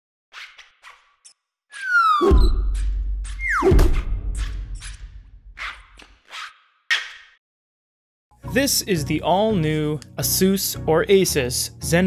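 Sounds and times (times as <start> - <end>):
falling whistles: 1.8 - 2.7.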